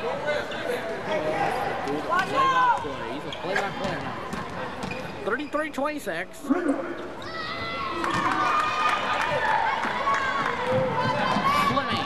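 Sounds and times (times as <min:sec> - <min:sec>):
spectators' voices and shouts: 0:00.0 - 0:12.0.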